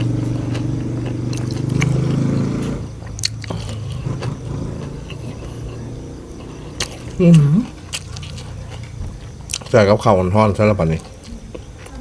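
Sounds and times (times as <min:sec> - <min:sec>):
chewing and lip-smacking: 0:00.0 - 0:10.0.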